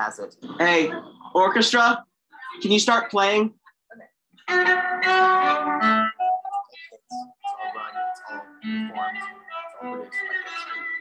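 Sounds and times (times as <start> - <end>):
violin and cello playing: 4.5 - 10.8.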